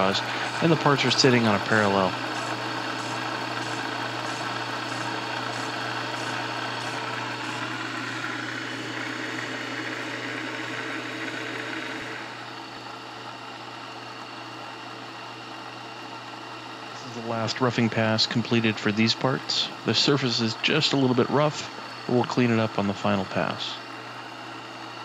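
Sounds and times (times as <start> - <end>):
milling machine hum: 0.0 - 25.0.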